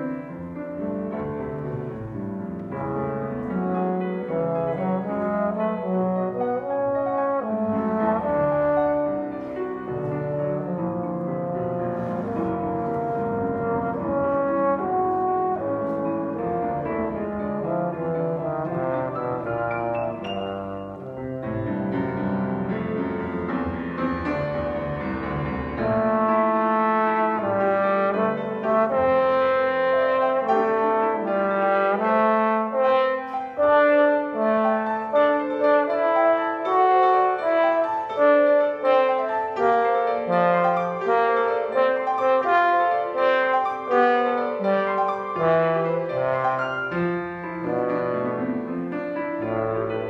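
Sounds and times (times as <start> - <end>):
trombone melody: 0.0 - 23.5, 25.4 - 50.0
piano accompaniment: 0.0 - 50.0.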